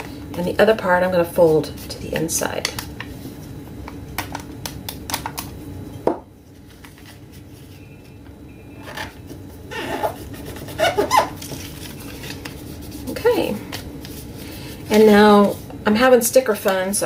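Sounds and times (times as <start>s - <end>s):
paper rustling: 6.5s - 7.8s, 9.8s - 15.6s.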